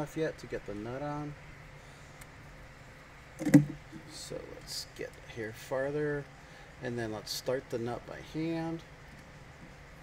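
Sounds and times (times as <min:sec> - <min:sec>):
parts knocking on tabletop: 0:03.4 - 0:03.8.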